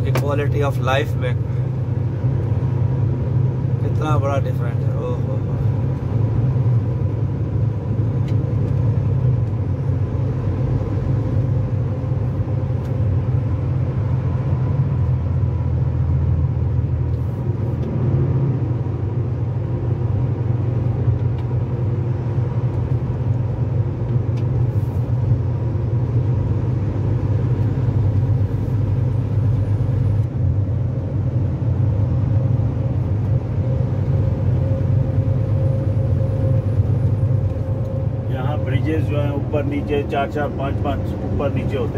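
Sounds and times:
vehicle engine and road drone: 0:00.0 - 0:41.9.

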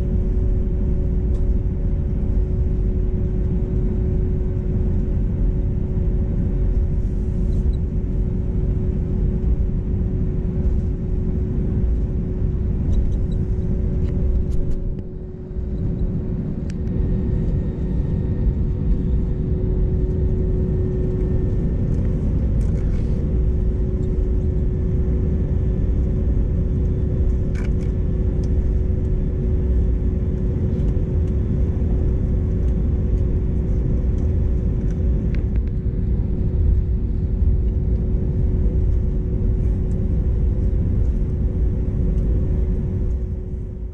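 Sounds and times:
aircraft cabin rumble: 0:00.0 - 0:43.9.

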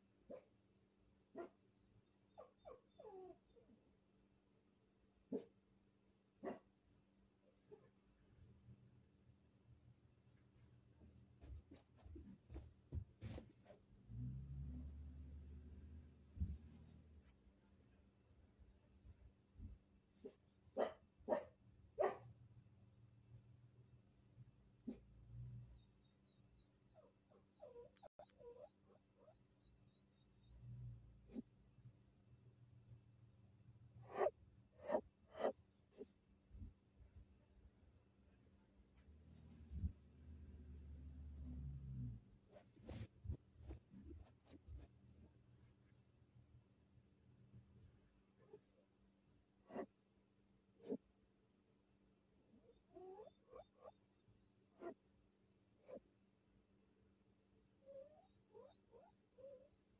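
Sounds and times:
faint low hum: 0:00.0 - 0:59.9
animal whining: 0:02.0 - 0:03.8, 0:25.6 - 0:31.5, 0:52.5 - 0:54.2, 0:57.8 - 0:59.8
animal whimpering: 0:02.3 - 0:03.6, 0:52.6 - 0:54.0, 0:57.8 - 0:59.7.

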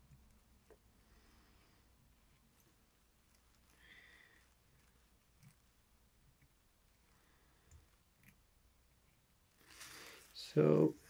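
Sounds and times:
faint soft rustle: 0:00.0 - 0:11.0.

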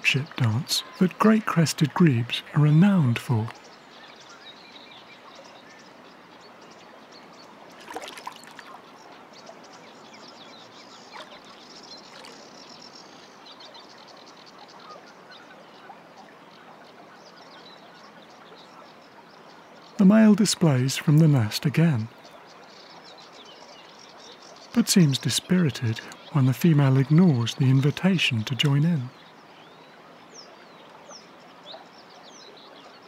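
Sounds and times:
small birds chirping faintly: 0:00.0 - 0:33.0.

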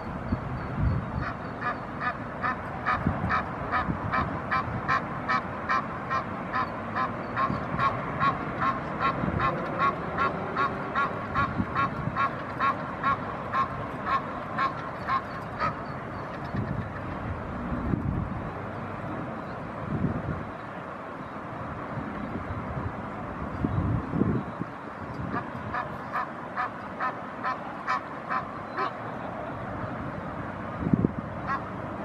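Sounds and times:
goose honking: 0:01.2 - 0:16.8, 0:25.3 - 0:29.0, 0:31.4 - 0:31.7.

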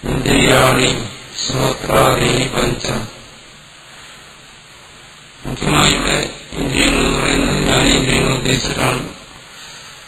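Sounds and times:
faint recording hiss: 0:00.0 - 0:10.0
man lecturing: 0:05.5 - 0:09.2.

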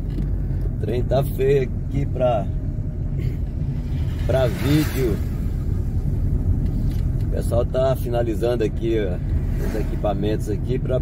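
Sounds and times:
vehicle road and wind noise: 0:00.0 - 0:11.0.

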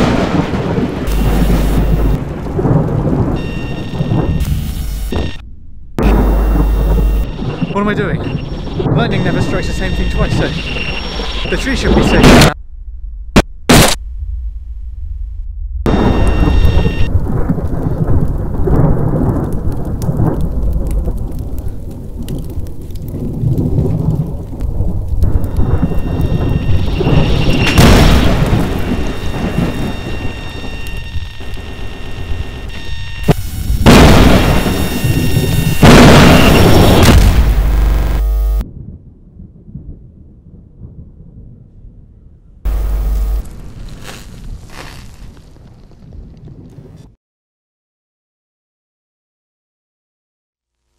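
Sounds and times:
rolling thunder: 0:00.0 - 0:04.5, 0:05.1 - 0:13.4, 0:14.0 - 0:43.9
heavy rain: 0:00.0 - 0:05.4, 0:06.0 - 0:12.6, 0:15.9 - 0:38.6, 0:42.7 - 0:45.8
faint hum: 0:36.4 - 0:38.6, 0:42.7 - 0:43.7.

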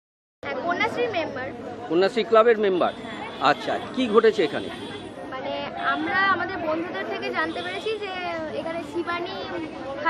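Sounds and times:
background chatter: 0:00.4 - 0:10.0.

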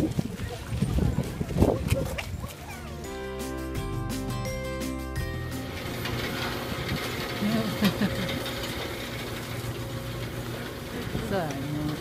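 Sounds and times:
rotisserie motor humming: 0:03.0 - 0:12.0.

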